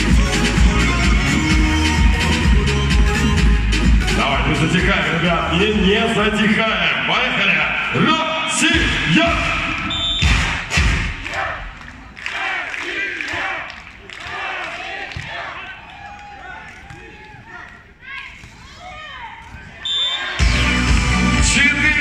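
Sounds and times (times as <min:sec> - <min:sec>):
loud stadium music: 0:00.0 - 0:15.6, 0:19.8 - 0:22.0.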